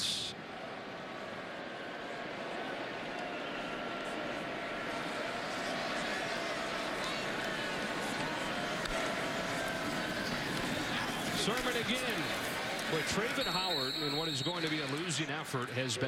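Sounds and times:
stadium crowd voices: 0.0 - 16.0.

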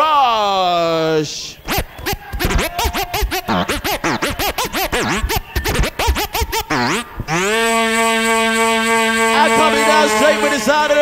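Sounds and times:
scratch-style pitch sweeps: 1.6 - 11.0
sustained synth chord: 1.9 - 11.0.

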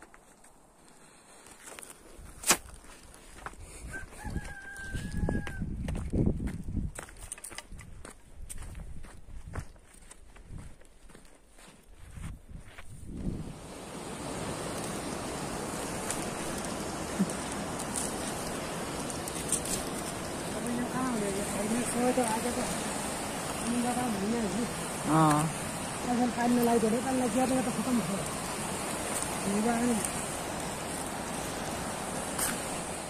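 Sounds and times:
footsteps on stony path: 0.0 - 24.1, 28.2 - 29.4
rooster crowing: 3.8 - 5.7
steady rushing noise: 13.2 - 33.0.

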